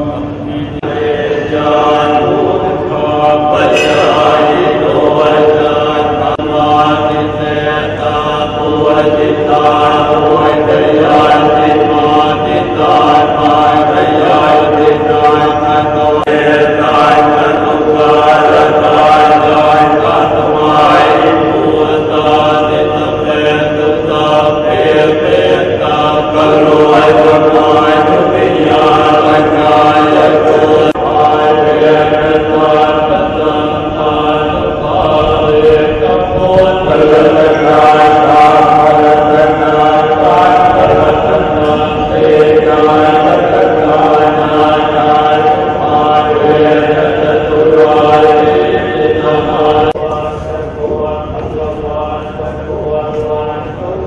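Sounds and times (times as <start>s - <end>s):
monks chanting in low drone: 0.0s - 54.0s.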